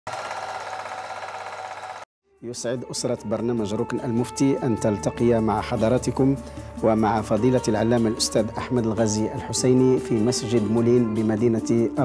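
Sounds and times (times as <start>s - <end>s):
film projector rattling: 0.1s - 2.0s.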